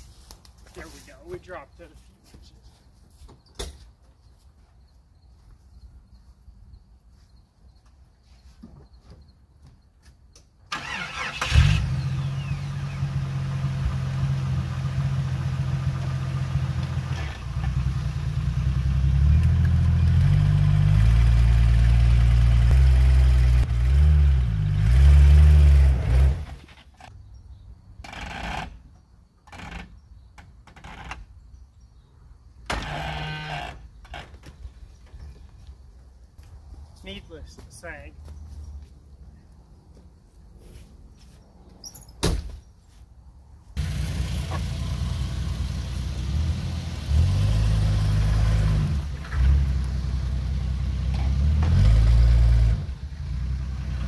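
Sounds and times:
car engine starting and revving: 10.7s - 26.7s, 43.8s - 54.0s.

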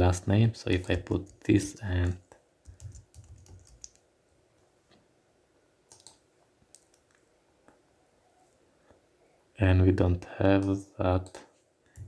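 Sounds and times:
faint keyboard keystrokes: 0.7s - 4.0s, 5.9s - 7.2s
sharp clicks: 5.9s - 7.2s.

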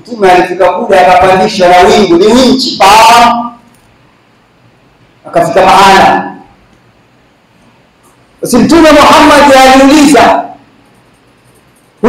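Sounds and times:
man speaking over a microphone: 0.0s - 3.6s, 5.2s - 6.5s, 8.4s - 10.6s.

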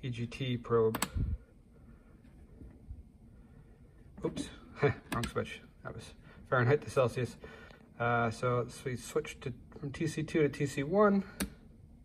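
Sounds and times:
slide switch click: 0.9s - 1.2s.

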